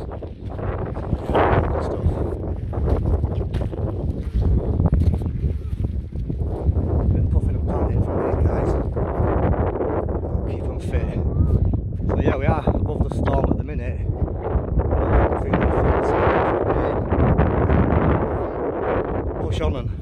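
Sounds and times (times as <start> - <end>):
wind buffeting microphone: 0.0 - 20.0
man talking: 1.2 - 2.4, 7.1 - 9.0, 10.4 - 11.3, 12.1 - 14.1, 15.0 - 17.1, 19.4 - 20.0.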